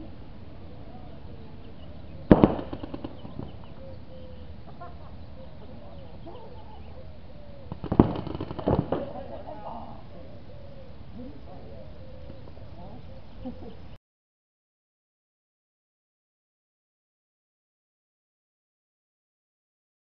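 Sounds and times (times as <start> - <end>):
paintball markers firing: 2.3 - 3.4, 7.7 - 9.2.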